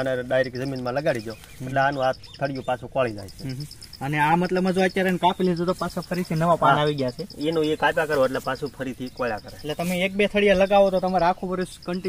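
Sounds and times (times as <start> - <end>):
high pulsing insect trill: 0.0 - 12.0
men talking: 0.0 - 12.0.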